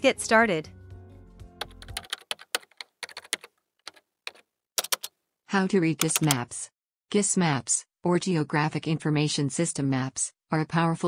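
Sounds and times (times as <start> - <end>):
background music: 0.0 - 2.7
computer keyboard typing: 1.6 - 5.1, 6.0 - 6.4.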